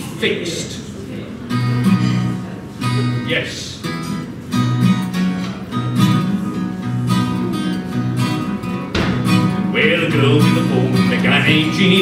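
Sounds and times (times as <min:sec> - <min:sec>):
acoustic guitar strumming: 0:01.5 - 0:12.0
man singing: 0:09.6 - 0:12.0.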